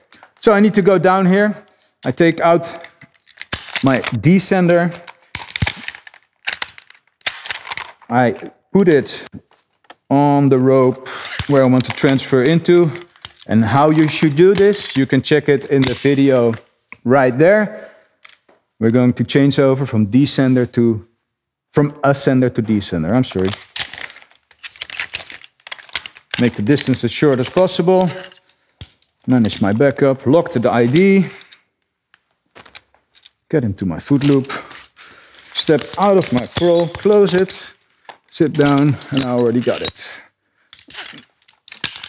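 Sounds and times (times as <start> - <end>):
metal hardware clicking and rattling: 2.1 - 8.1, 11.3 - 16.6, 23.4 - 29.9, 34.1 - 34.6, 35.5 - 42.0.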